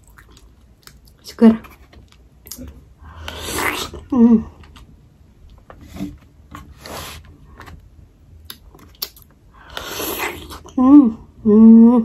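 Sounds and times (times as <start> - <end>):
person chewing: 0.0 - 1.2, 2.1 - 4.9, 8.4 - 10.8
wet mouth clicks and smacks: 8.4 - 9.3.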